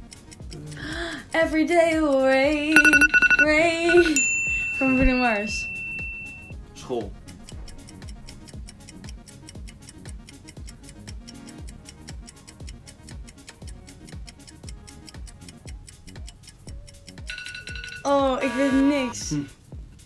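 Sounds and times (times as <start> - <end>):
clock-like ticking music: 0.0 - 19.8
high buzzer tone: 2.8 - 6.5, 17.3 - 19.2.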